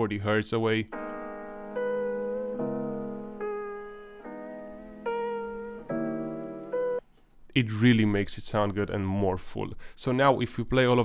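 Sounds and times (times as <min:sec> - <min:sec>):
solo melodic instrument notes: 0:00.9 - 0:07.0.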